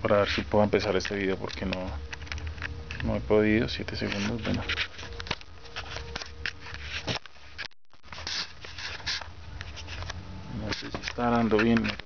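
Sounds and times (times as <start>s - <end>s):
handling noise on microphone: 0.1s - 12.0s.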